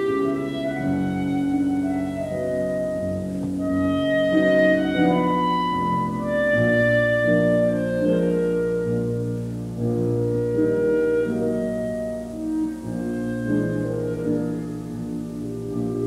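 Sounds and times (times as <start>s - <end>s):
clarinet melody: 0.0s - 16.0s
piano chords: 0.0s - 16.0s.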